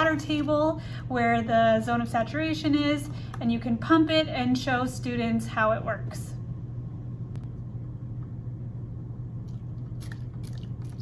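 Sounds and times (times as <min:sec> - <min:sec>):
steady low hum: 0:00.0 - 0:11.0
wet squelches: 0:09.4 - 0:11.0.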